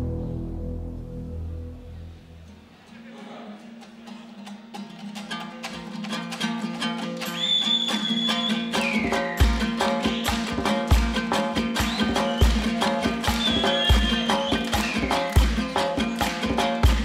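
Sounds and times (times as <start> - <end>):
low steady drone: 0.0 - 2.4
plucked string instrument: 0.0 - 17.0.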